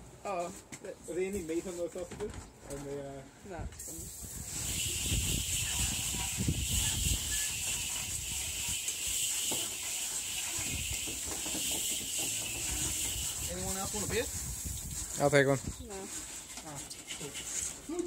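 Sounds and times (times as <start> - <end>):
steady high hiss: 3.8 - 15.8.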